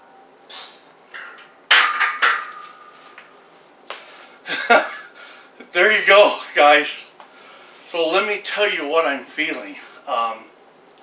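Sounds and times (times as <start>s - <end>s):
barbell clanging on steel rack: 1.1s - 2.9s.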